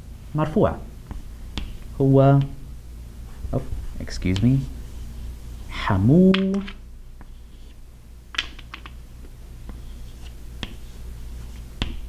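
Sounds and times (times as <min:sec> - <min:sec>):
low room hum: 0:00.0 - 0:12.0
chalk tapping and scraping on board: 0:09.7 - 0:12.0.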